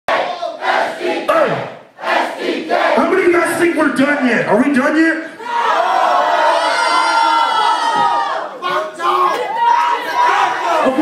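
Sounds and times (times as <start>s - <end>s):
crowd shouting and yelling: 4.9s - 11.0s.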